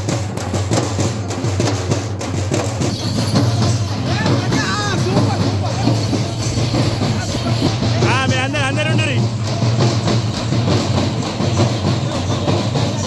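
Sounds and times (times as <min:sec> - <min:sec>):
crowd noise: 0:00.0 - 0:13.0
procession drumming: 0:00.0 - 0:13.0.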